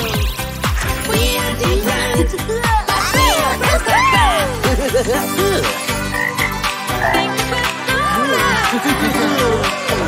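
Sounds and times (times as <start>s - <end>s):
backing music with steady beat: 0.0s - 10.0s
cartoon frog croaks: 5.8s - 7.4s.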